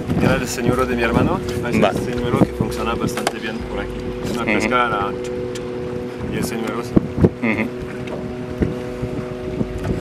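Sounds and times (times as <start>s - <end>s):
boat motor hum: 0.0s - 10.0s
wind buffeting microphone: 0.0s - 10.0s.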